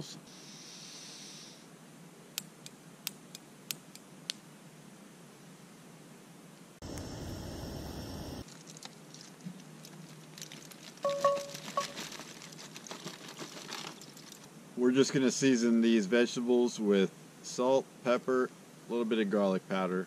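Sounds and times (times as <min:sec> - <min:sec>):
gas hissing: 0:06.8 - 0:08.4
sharp igniter clicks: 0:06.8 - 0:08.4
burner rushing with faint whine: 0:06.8 - 0:08.5.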